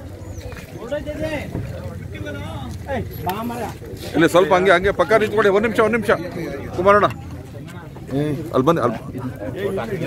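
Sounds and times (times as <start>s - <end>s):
men's voices talking: 0.0s - 10.0s.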